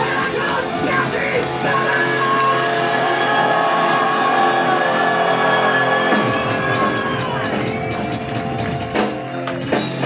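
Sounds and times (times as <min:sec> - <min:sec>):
drum kit playing: 0:00.0 - 0:03.4, 0:05.6 - 0:10.0.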